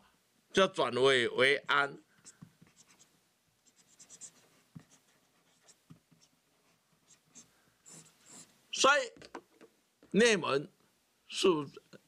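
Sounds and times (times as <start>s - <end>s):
marker pen scratching on paper: 2.2s - 8.5s.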